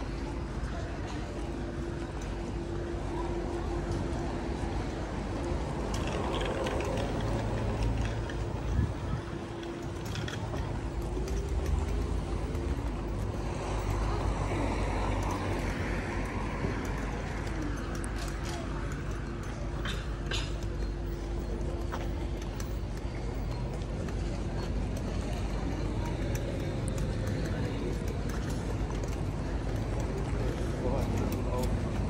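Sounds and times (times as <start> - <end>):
road traffic rumble: 0.0 - 32.0
cars passing: 1.0 - 32.0.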